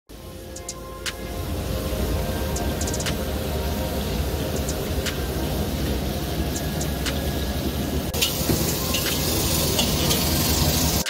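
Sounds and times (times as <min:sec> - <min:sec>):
gas burners roaring: 0:00.1 - 0:11.0.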